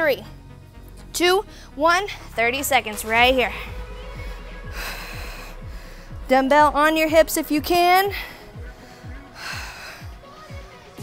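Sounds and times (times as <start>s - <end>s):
workout music with steady beat: 0.0s - 11.0s.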